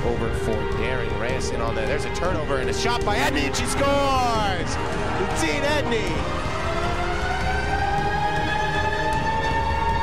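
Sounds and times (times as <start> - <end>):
goal siren rising in pitch: 4.4 - 10.0.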